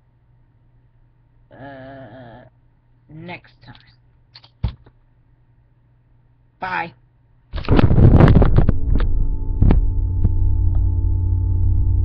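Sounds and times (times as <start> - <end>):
steady low hum: 4.9 - 12.0
loud low rumbling: 7.7 - 12.0
faint tone: 8.7 - 12.0.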